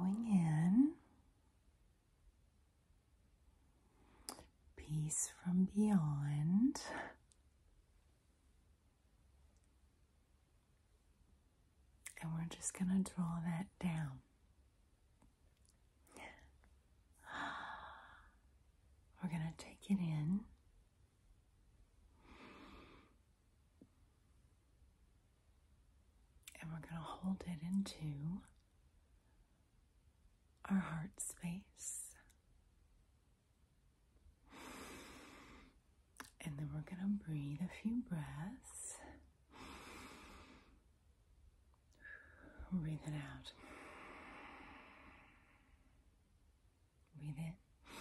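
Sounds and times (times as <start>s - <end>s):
woman breathing in softly: 22.2s - 23.2s, 39.5s - 40.8s, 43.6s - 45.9s.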